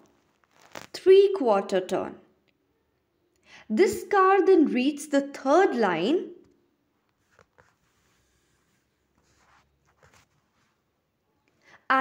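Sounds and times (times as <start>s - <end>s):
finger rubbing on touchscreen: 7.2s - 10.8s.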